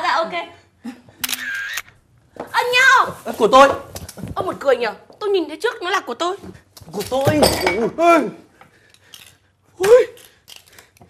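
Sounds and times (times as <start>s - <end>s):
camera shutter click: 1.2s - 1.9s.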